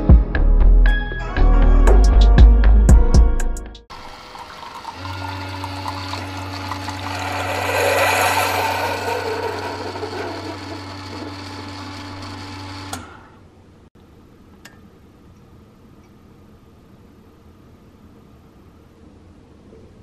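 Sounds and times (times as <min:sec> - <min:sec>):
coffee trickling into mug: 0:03.9 - 0:08.1
coffee maker pump hum: 0:03.9 - 0:13.2.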